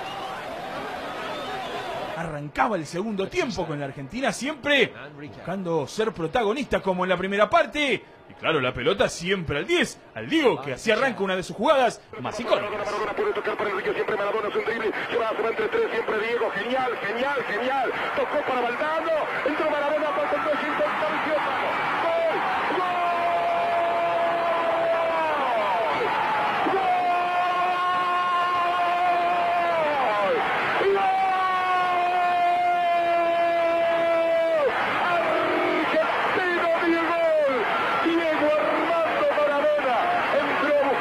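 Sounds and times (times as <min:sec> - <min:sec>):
man shouting goal commentary: 0:09.5 - 0:41.0
rapid shouted speech: 0:10.3 - 0:41.0.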